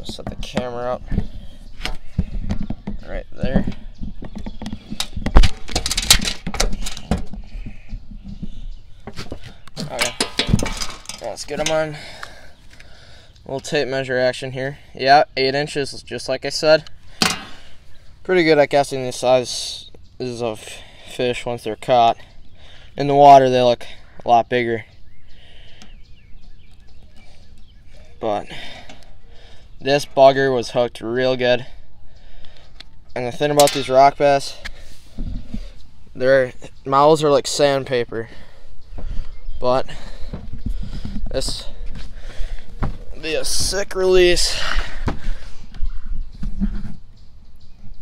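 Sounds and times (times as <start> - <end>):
songbird chirping: 0.0 - 48.0.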